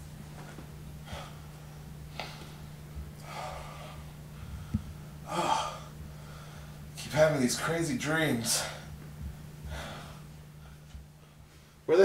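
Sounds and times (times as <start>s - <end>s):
low hum: 0.0s - 12.0s
man gasping breath: 2.1s - 6.8s, 9.6s - 11.4s.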